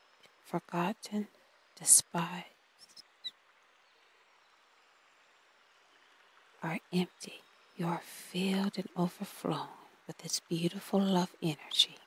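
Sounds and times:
faint rush of falling water: 0:00.0 - 0:12.0.

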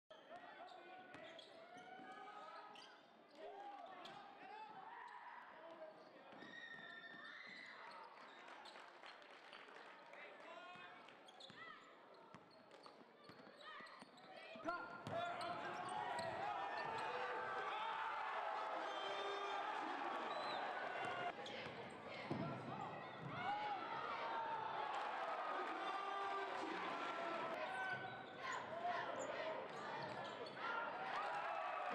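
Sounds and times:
voices of players and spectators: 0:00.1 - 0:31.9.

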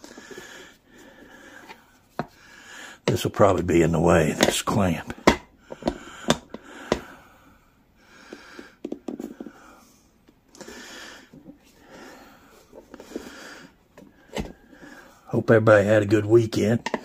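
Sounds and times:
man breathing heavily: 0:00.0 - 0:03.1, 0:05.2 - 0:15.3.

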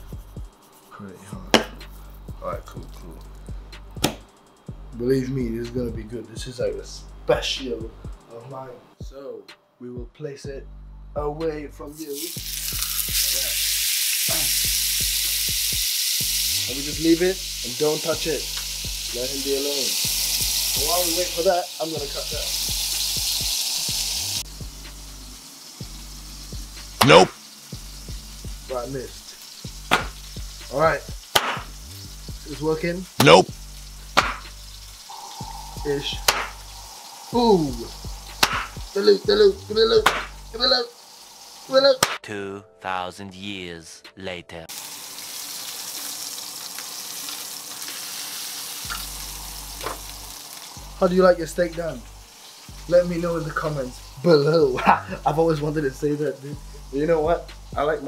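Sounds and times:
background music with low tones: 0:00.0 - 0:46.7, 0:48.7 - 0:58.0
steak sizzling in a hot pan: 0:12.0 - 0:42.2, 0:44.7 - 0:58.0
low hum: 0:34.6 - 0:38.9.

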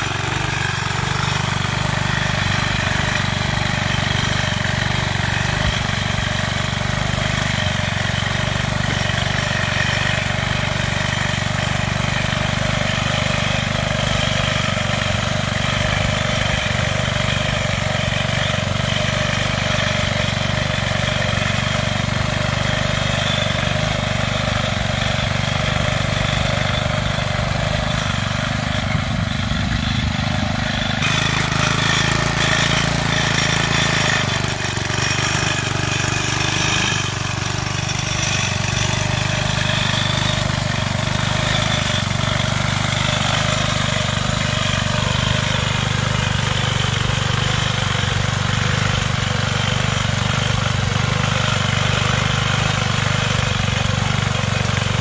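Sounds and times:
garden tractor engine running: 0:00.0 - 0:55.0.

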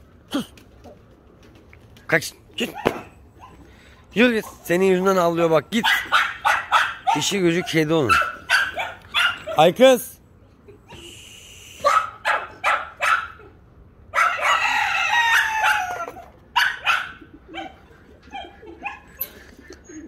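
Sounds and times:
rooster crowing: 0:14.2 - 0:16.2.

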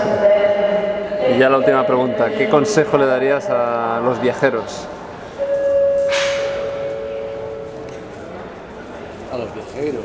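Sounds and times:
two-note electronic chime: 0:05.4 - 0:08.4.

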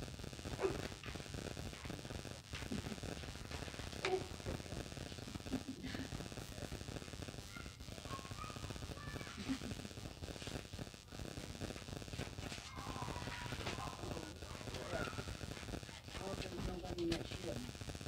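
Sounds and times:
low crackling rumble: 0:00.0 - 0:18.0
faint indistinct voices: 0:00.6 - 0:10.7, 0:11.4 - 0:17.7.

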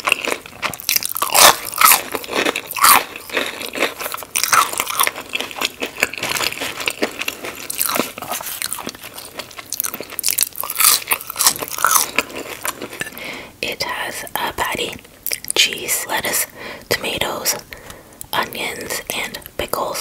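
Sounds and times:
chewing: 0:00.0 - 0:13.2, 0:15.2 - 0:15.6
crunching bites of onion ring: 0:00.0 - 0:13.2.

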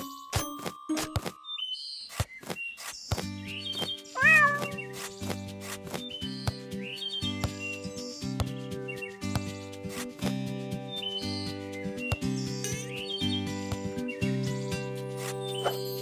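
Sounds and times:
light background music: 0:00.0 - 0:16.0
cat meowing: 0:04.2 - 0:04.8.

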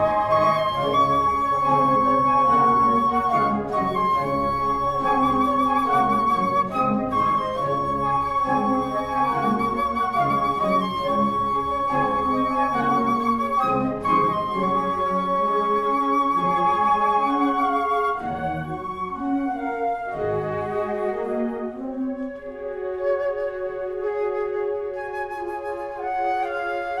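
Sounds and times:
flute orchestra playing: 0:00.0 - 0:27.0.

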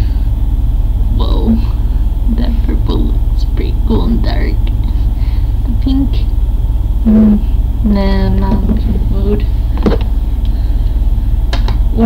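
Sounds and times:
steady low hum: 0:00.0 - 0:12.0
short hummed vocal sound: 0:01.0 - 0:06.3, 0:07.0 - 0:12.0.

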